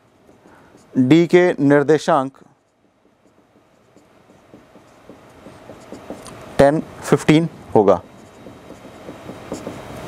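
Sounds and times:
marker scratching on whiteboard: 0.0 - 10.0.

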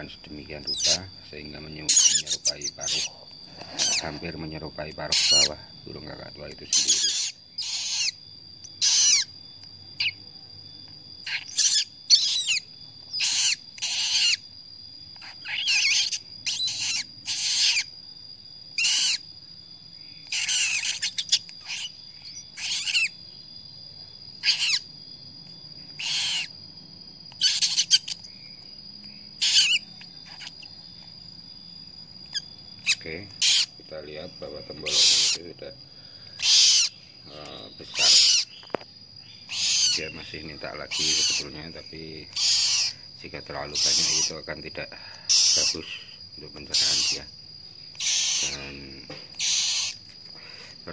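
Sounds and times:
chick rasping begging calls: 0.6 - 1.0, 1.8 - 4.3, 5.0 - 5.6, 6.7 - 9.3, 11.2 - 14.4, 15.2 - 18.0, 18.8 - 19.3, 20.2 - 23.2, 24.4 - 24.9, 26.0 - 26.5, 27.3 - 28.3, 29.4 - 30.7, 32.3 - 33.8, 34.8 - 35.4, 36.4 - 37.0, 37.8 - 38.6, 39.4 - 41.6, 42.3 - 44.4, 45.2 - 47.3, 47.9 - 50.7.

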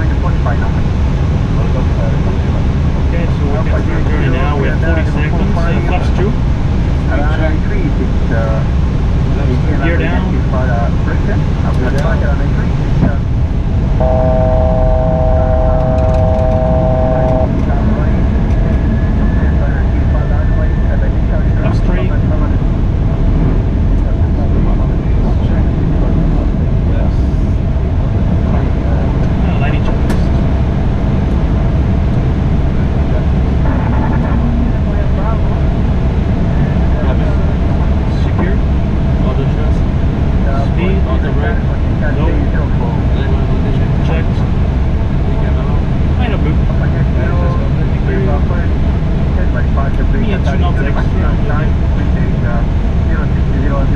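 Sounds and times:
airflow and engine noise in cockpit: 0.0 - 53.9
multi-pitch electronic tone: 13.8 - 22.5.

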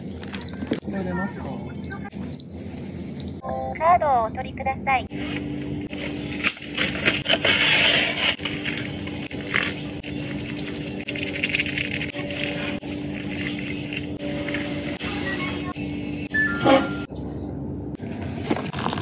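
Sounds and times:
steady low hum: 0.0 - 18.5
plastic packets crinkling: 6.0 - 15.0.

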